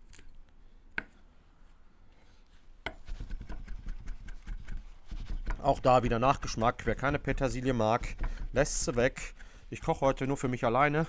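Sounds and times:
knife chopping on wooden board: 2.8s - 10.0s.

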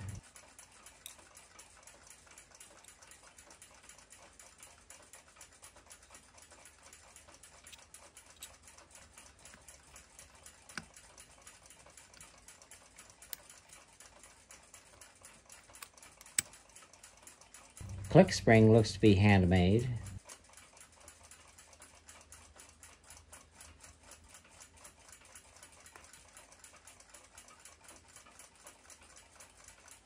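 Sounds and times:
mechanical clock ticking: 0.0s - 30.0s
metal tweezers clicking: 7.6s - 11.0s, 15.5s - 16.6s.

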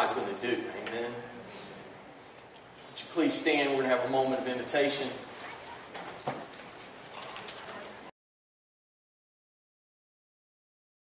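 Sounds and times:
people shuffling: 5.1s - 8.1s.

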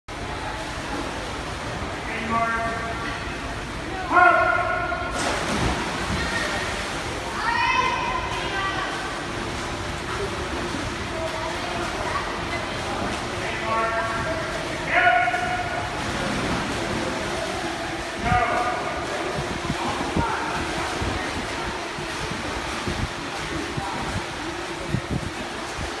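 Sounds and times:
loud splash into pool: 4.6s - 12.2s, 14.3s - 24.0s.

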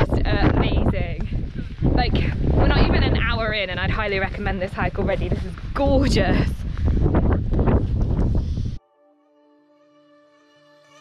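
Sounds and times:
wind buffeting microphone: 0.0s - 8.8s.

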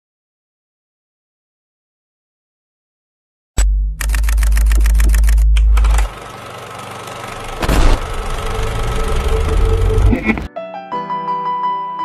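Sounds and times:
deep hum: 3.6s - 6.2s, 7.4s - 10.5s
film projector clatter: 4.0s - 10.1s.

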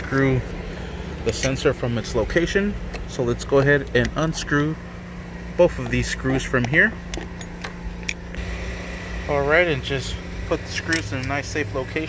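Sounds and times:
low background hum: 0.0s - 12.0s
screwdriver metallic clicks: 10.8s - 11.4s.

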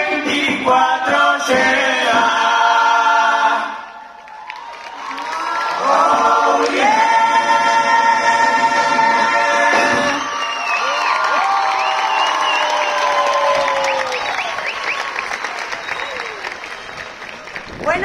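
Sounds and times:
crowd cheering and whooping: 4.0s - 7.5s, 8.4s - 17.7s
applause: 4.2s - 6.8s, 10.2s - 18.0s
choir holding a chord: 5.8s - 10.3s.

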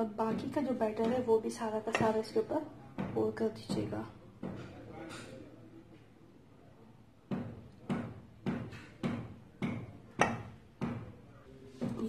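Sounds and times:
spoon knocking against dish: 1.9s - 5.3s, 7.3s - 11.2s.

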